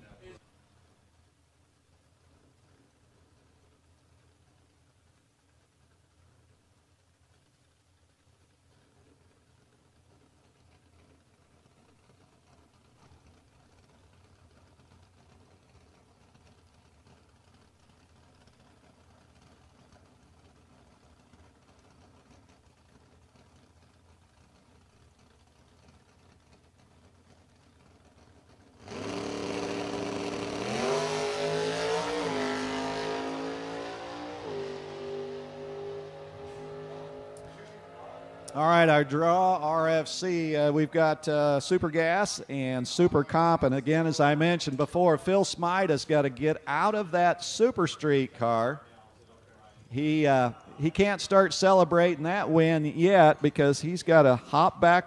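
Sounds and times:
drag racing car engines accelerating: 0:10.0 - 0:55.0.

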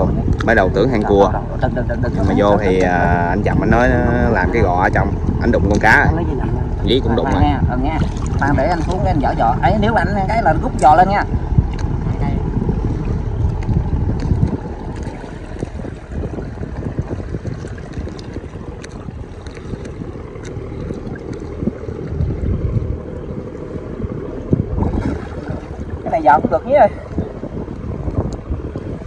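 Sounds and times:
river water sloshing: 0:00.0 - 0:29.0
wind buffeting microphone: 0:00.0 - 0:29.0.

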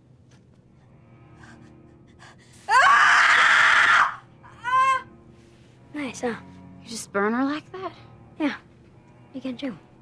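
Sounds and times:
girl screaming in pain: 0:02.7 - 0:05.0.

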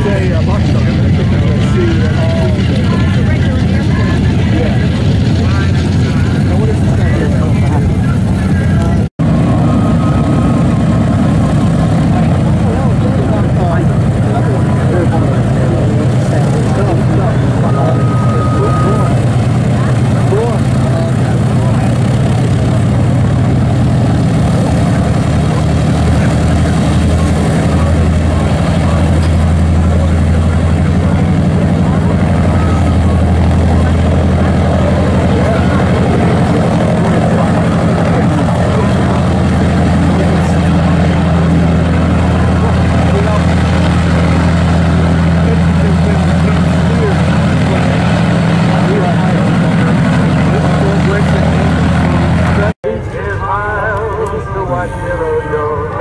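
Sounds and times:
propeller aircraft engines running: 0:00.0 - 0:56.0.

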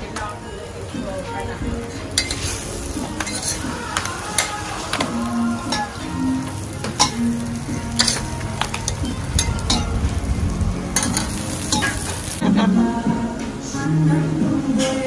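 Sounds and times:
bread sizzling on a griddle: 0:00.0 - 0:12.4
music: 0:00.0 - 0:15.0
metal spatula scraping griddle: 0:01.9 - 0:12.4.

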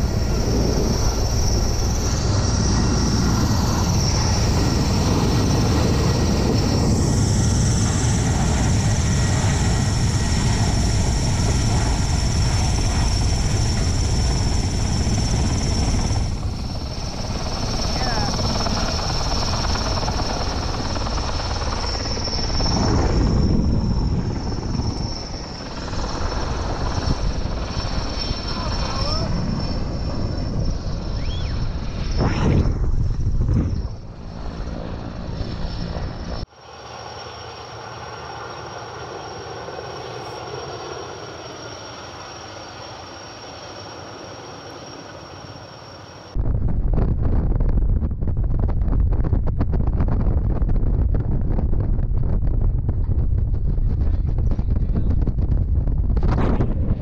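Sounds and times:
wind buffeting microphone: 0:00.0 - 0:36.5, 0:46.3 - 0:57.0
helicopter rotor noise: 0:00.0 - 0:46.9, 0:50.4 - 0:57.0.

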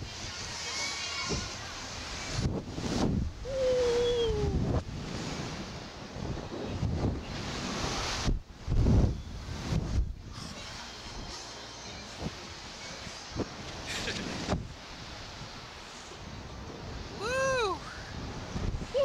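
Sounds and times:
wind rushing over microphone: 0:00.0 - 0:11.3, 0:11.9 - 0:19.0.

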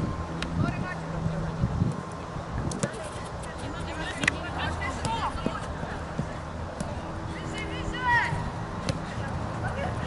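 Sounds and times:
ball being kicked: 0:02.7 - 0:03.1, 0:08.8 - 0:09.1
football players calling out: 0:03.1 - 0:10.0.

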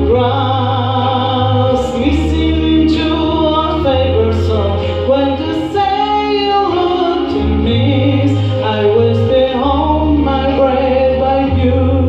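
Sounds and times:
instrumental backing track: 0:00.0 - 0:12.0.

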